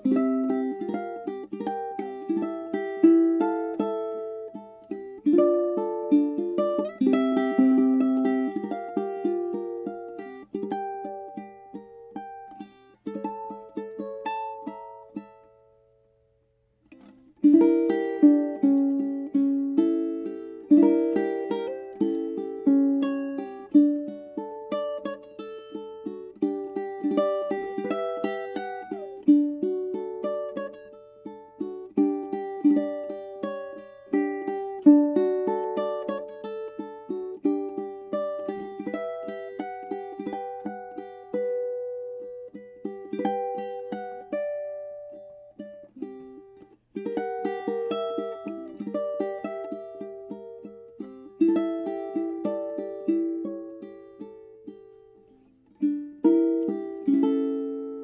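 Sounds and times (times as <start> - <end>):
ukulele fingerpicked melody: 0.0 - 58.0.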